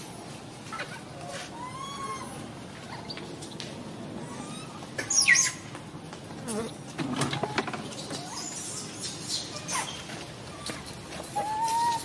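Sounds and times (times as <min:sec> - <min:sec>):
infant monkey squealing: 0:00.8 - 0:03.2, 0:04.2 - 0:05.6, 0:11.3 - 0:12.0.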